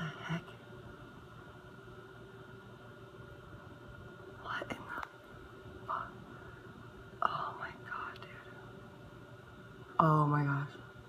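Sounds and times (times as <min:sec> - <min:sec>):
faint steady hum: 0:00.0 - 0:11.0
person whispering: 0:04.4 - 0:05.1, 0:05.8 - 0:06.2, 0:07.2 - 0:08.6.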